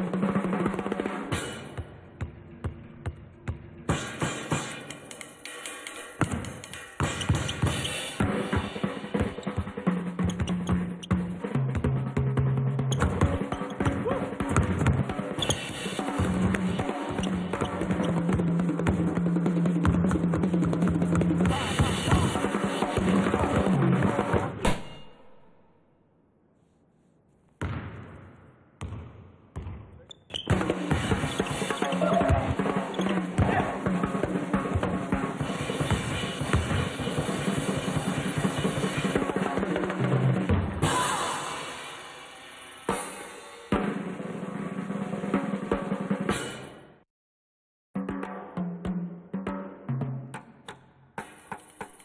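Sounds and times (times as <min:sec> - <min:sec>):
drum kit groove: 0:00.0 - 0:25.0, 0:30.4 - 0:46.8.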